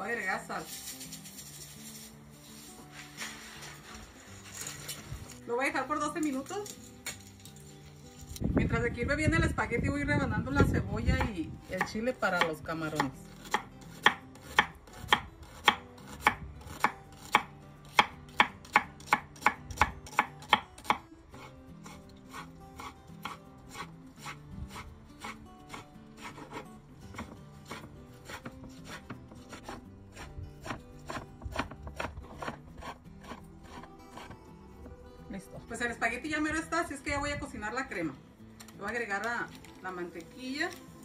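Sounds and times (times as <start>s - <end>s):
knife chopping on wooden board: 11.1s - 21.0s, 21.8s - 34.4s.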